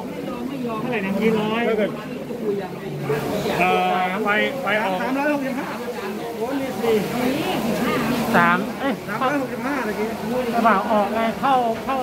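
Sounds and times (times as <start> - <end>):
men talking: 0.8 - 12.0.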